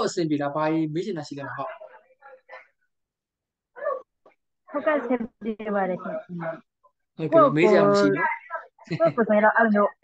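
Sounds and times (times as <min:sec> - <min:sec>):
man speaking: 0:00.0 - 0:01.8, 0:07.2 - 0:08.2.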